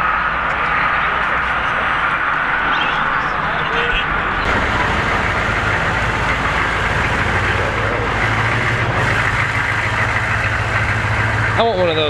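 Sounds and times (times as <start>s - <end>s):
truck engine rolling past: 0.0s - 12.0s.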